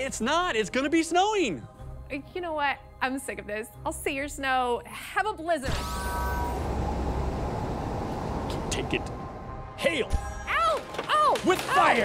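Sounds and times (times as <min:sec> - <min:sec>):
blizzard wind rushing: 0:06.4 - 0:09.8.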